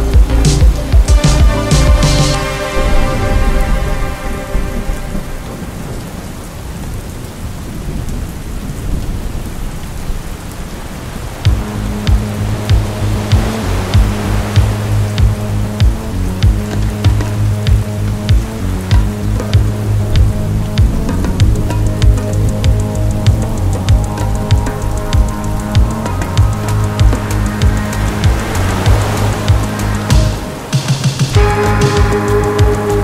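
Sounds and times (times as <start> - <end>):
low synth drone with pulsing beat: 0.0 - 7.0, 11.4 - 33.0
rain: 0.0 - 33.0
low rolling thunder: 2.7 - 33.0.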